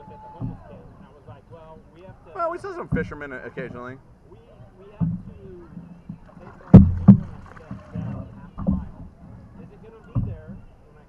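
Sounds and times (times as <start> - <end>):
hollow knocks on canoe hull: 4.9 - 10.7.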